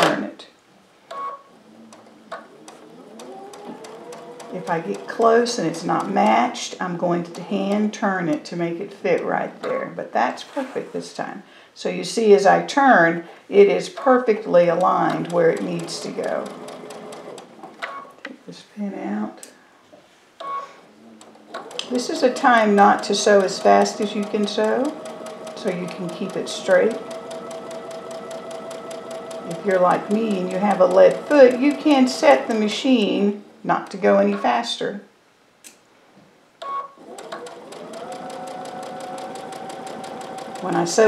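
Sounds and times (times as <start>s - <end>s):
electric sewing machine stitching: 1.6s - 6.5s, 14.7s - 17.8s, 21.2s - 33.2s, 37.0s - 41.0s
sewing machine electronic beep: 36.6s - 37.0s.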